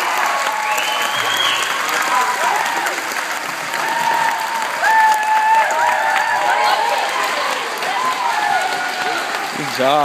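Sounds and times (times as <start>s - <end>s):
children applauding: 0.0s - 10.0s.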